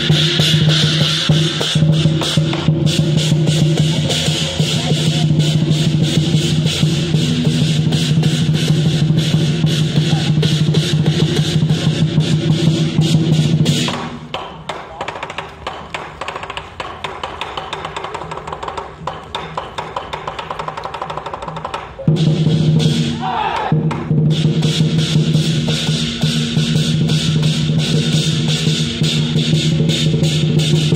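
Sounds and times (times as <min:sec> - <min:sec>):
rapid drumbeats: 0:00.0 - 0:30.9.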